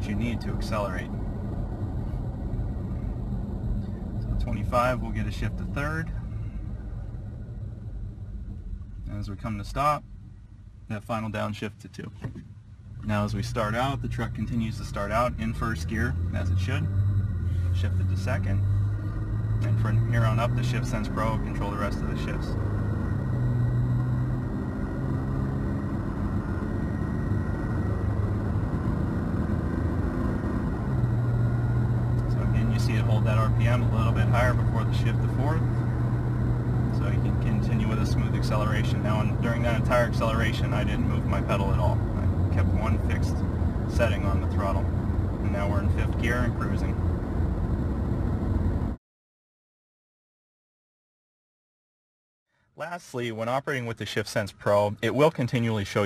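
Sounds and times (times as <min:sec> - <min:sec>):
road noise inside cab: 0:00.0 - 0:49.0, 0:52.9 - 0:56.0
truck engine low rumble: 0:00.0 - 0:49.0.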